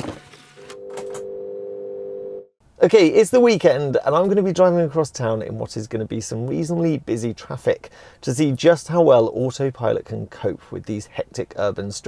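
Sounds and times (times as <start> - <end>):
electronic hum of held tones: 0.6 - 2.5.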